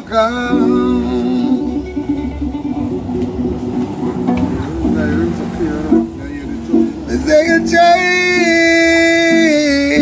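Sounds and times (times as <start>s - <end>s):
acoustic guitar: 0.0s - 10.0s
person singing reggae song: 0.0s - 10.0s.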